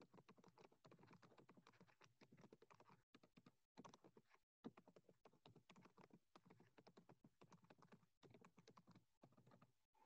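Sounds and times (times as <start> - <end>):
soft keyboard typing: 0.0 - 9.7.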